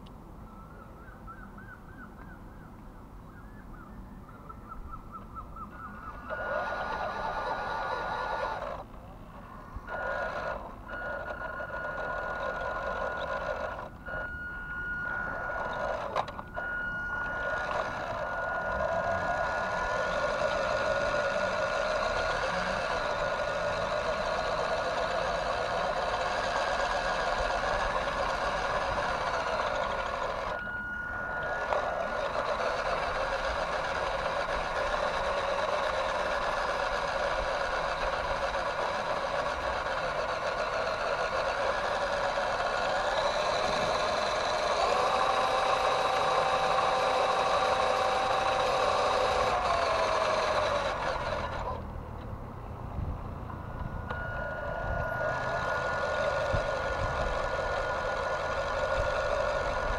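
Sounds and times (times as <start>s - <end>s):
toy truck motor whining: 5.7s - 52.2s, 53.5s - 59.9s.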